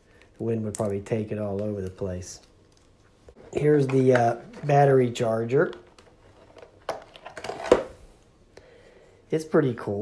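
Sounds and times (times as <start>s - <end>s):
plastic packaging rustling: 3.4s - 8.0s.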